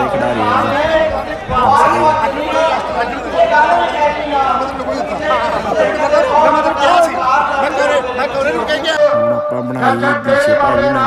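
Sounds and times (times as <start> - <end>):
men talking over one another: 0.0 - 11.0.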